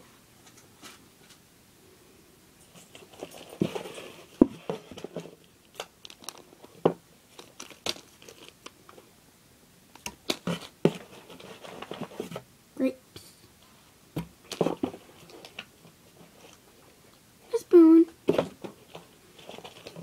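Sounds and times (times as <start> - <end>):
plastic bag crinkling: 5.6 - 8.9.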